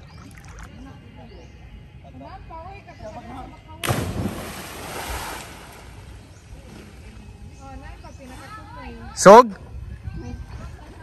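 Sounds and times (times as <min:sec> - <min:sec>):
loud splash into water: 0:03.8 - 0:06.0.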